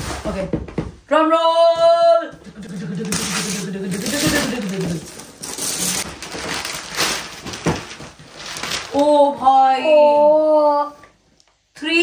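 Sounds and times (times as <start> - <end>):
wrapping paper tearing: 2.7 - 9.2.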